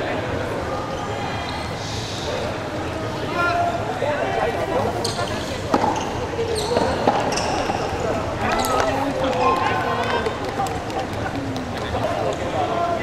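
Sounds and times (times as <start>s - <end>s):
rackets striking ball: 6.7s - 8.8s.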